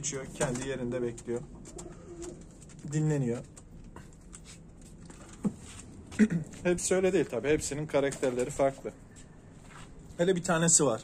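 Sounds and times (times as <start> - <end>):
faint taps and shuffles: 8.0 - 10.3.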